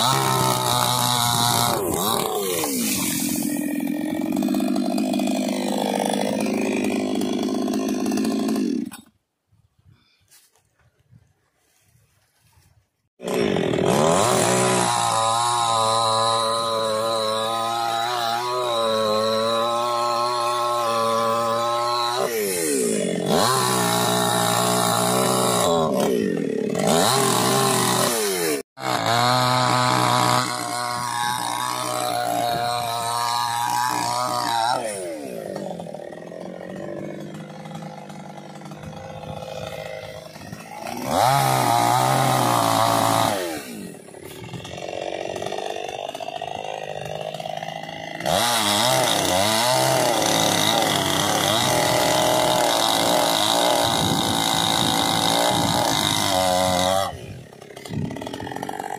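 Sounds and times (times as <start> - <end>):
chainsaw cutting wood: 0.0 - 9.2, 13.2 - 58.9.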